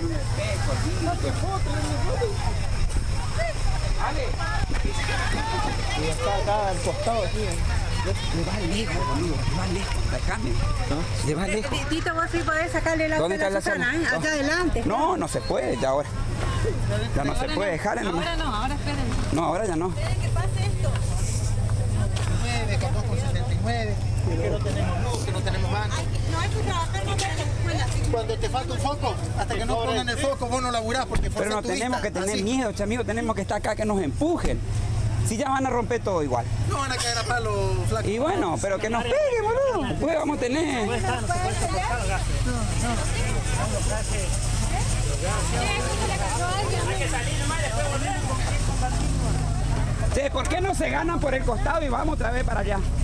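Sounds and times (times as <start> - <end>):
people talking: 0.0 - 53.0
people's voices: 0.0 - 53.0
truck engine idling: 0.0 - 53.0.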